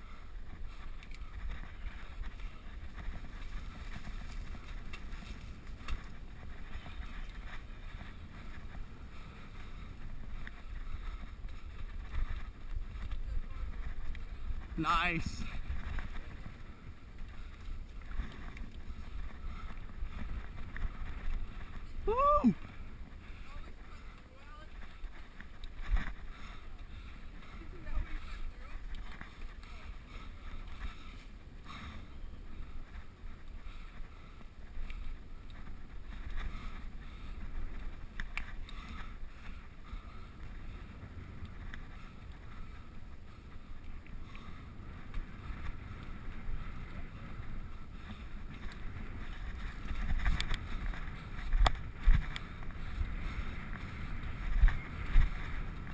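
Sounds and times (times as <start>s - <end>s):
bike rattling: 0.0s - 55.9s
wind and tyre rumble: 0.0s - 55.9s
rising-then-falling cry: 22.1s - 22.6s.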